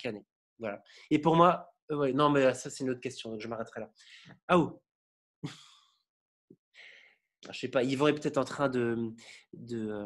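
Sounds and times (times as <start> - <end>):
faint breath: 6.8 - 7.3.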